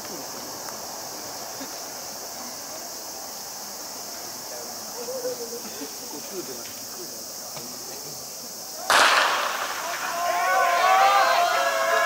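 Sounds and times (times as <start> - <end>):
starter's pistol crack: 8.9 - 9.8.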